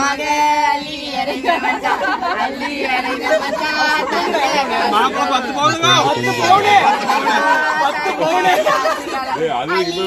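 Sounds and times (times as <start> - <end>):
people talking and chattering: 0.0 - 10.0.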